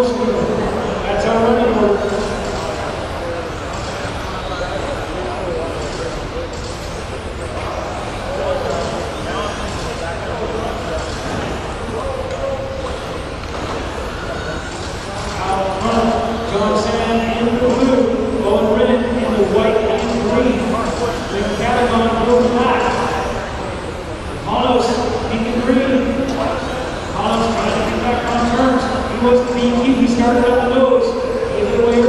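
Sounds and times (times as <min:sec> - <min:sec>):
reverberant race commentary: 0:00.0 - 0:32.0.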